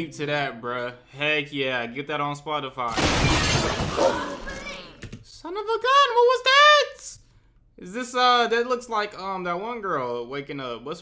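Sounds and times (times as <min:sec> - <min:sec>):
glass shattering: 0:02.9 - 0:04.9.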